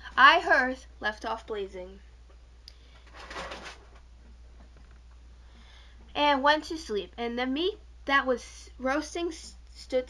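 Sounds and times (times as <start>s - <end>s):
faint low hum: 0.0s - 10.0s
person breathing in: 5.4s - 6.1s.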